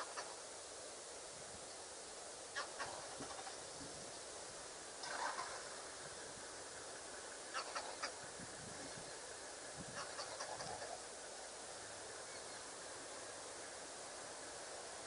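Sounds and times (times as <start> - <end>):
bird-like animal calls: 0.0 - 0.4, 2.5 - 3.6, 5.0 - 5.9, 7.5 - 8.2, 9.9 - 11.1
steady background hiss: 0.0 - 15.0.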